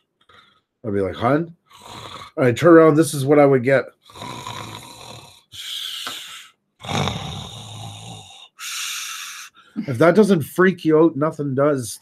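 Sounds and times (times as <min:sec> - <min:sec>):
man imitating snoring: 0:01.7 - 0:02.5, 0:04.0 - 0:06.0, 0:06.8 - 0:09.5
hissing breath: 0:05.5 - 0:09.8.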